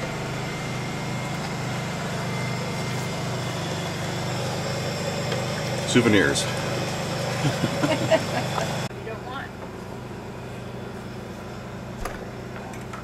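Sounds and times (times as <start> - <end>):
engine running steadily: 0.0 - 13.0.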